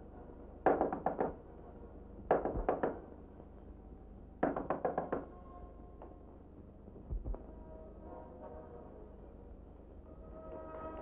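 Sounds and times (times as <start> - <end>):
knuckles knocking on door: 2.3 - 3.0.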